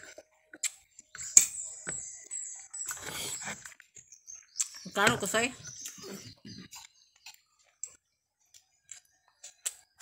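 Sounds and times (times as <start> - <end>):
quiet chewing: 0.0 - 10.0.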